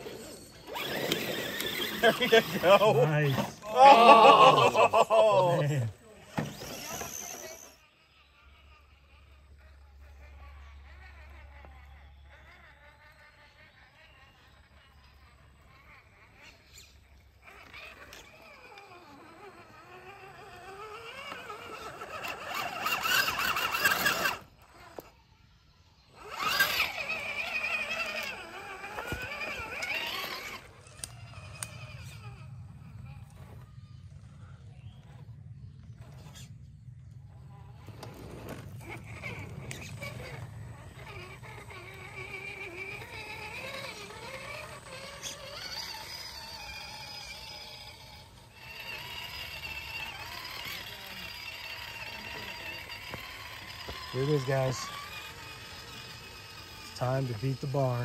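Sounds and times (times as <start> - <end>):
electric motors and gears whining: 0.0 - 58.0.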